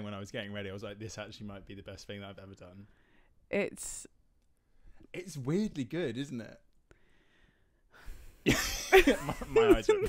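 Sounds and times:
person laughing: 0:08.5 - 0:10.0.

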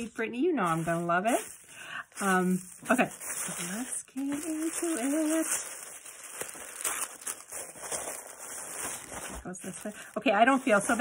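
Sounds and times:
tissue paper rustling: 0:00.0 - 0:11.0.

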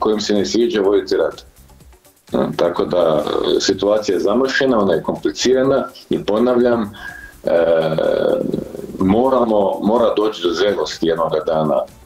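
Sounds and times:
man's drawn-out hesitation sound: 0:02.3 - 0:11.9.

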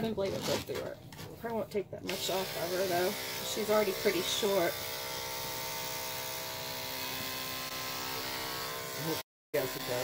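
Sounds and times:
electric dog clipper buzzing: 0:02.1 - 0:10.0.

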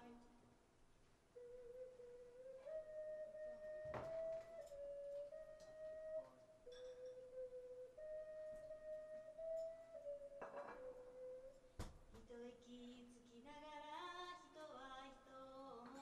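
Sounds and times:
hand-held wind instrument melody: 0:01.3 - 0:12.0.

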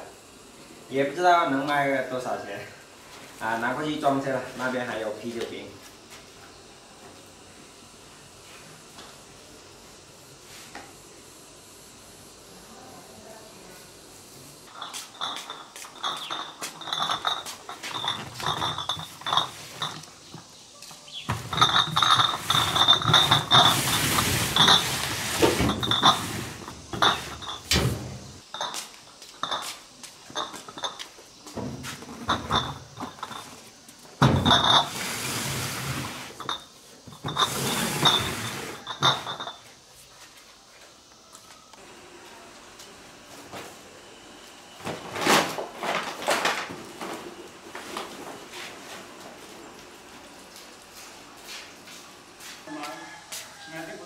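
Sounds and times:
glass bottles clinking: 0:14.7 - 0:20.4, 0:21.0 - 0:28.8, 0:29.4 - 0:31.1, 0:32.0 - 0:39.8.

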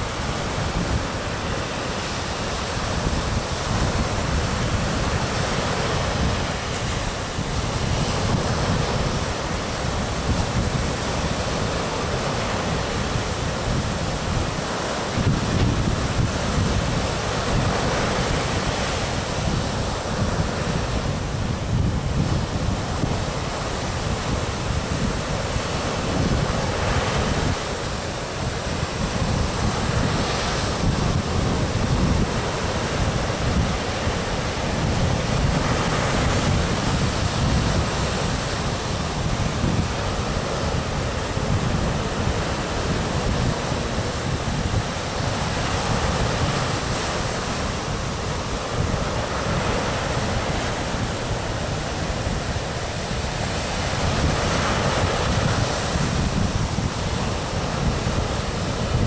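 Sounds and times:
ocean waves breaking on beach: 0:00.0 - 0:59.0
wind rumbling on microphone: 0:00.0 - 0:59.0.

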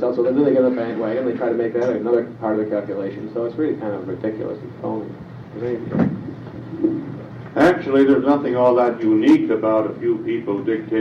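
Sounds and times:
low tape hum: 0:00.0 - 0:11.0.

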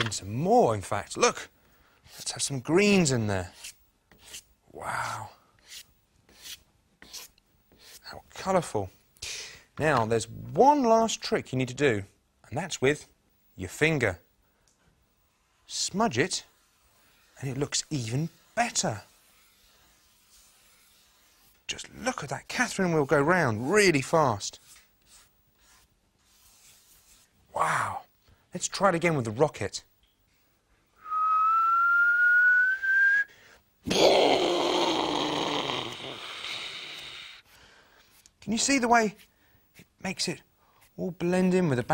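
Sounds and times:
chalk scratching on paper: 0:03.4 - 0:04.5, 0:05.6 - 0:08.1, 0:15.3 - 0:21.8, 0:22.6 - 0:27.4
person whistling rising pitch: 0:31.0 - 0:33.3.

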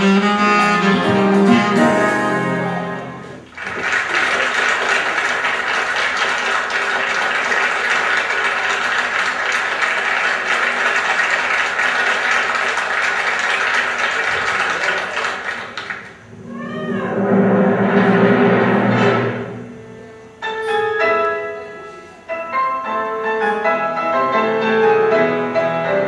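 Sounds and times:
audience applauding: 0:03.0 - 0:16.3.

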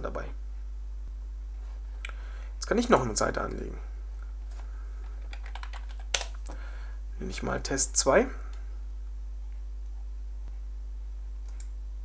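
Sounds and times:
low hum: 0:00.0 - 0:12.0
keyboard typing: 0:05.0 - 0:06.4.

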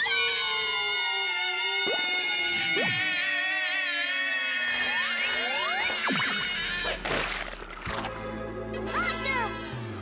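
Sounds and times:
music: 0:05.6 - 0:10.0.

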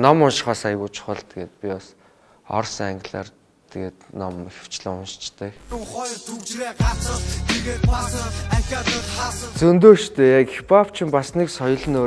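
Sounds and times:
man rapping: 0:05.6 - 0:12.0
heavy kick drum: 0:06.8 - 0:07.0
deep bass beat: 0:06.8 - 0:09.8.

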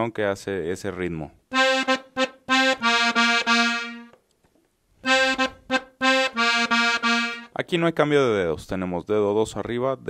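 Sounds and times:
button accordion playing: 0:01.5 - 0:04.2, 0:05.0 - 0:07.6.

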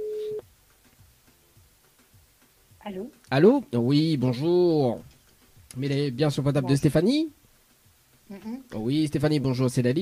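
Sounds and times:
telephone ringback beep: 0:00.0 - 0:00.4.

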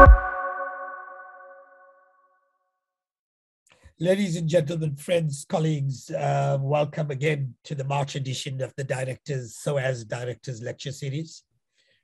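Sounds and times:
sustained music chord ringing: 0:00.0 - 0:01.7.

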